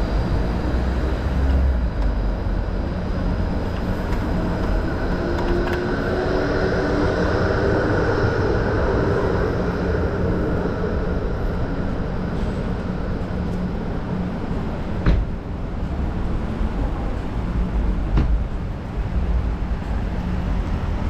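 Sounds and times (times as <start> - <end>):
tram motor humming: 0.0 - 21.0.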